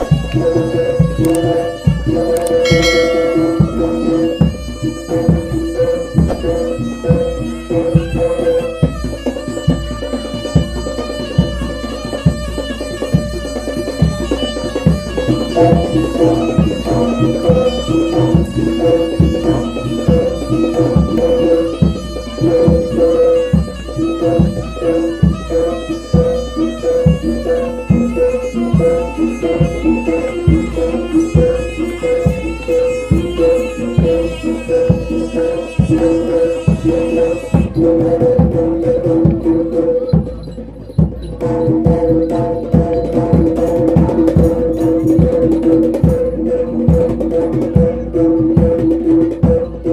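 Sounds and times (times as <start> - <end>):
reedy shawm melody: 0.0 - 49.9
drum beat: 2.7 - 6.8.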